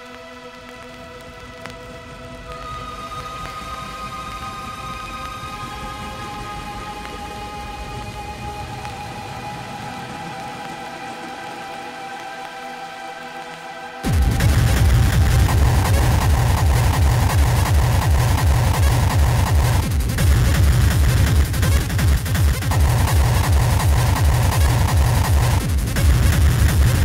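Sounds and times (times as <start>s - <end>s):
sustained synth pad chord: 0.0s - 19.9s
steady noisy hiss: 0.0s - 27.0s.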